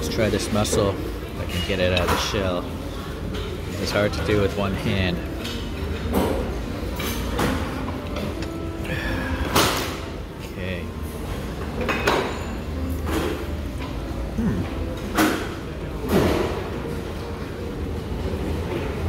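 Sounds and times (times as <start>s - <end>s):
restaurant voices hubbub: 0.0s - 19.0s.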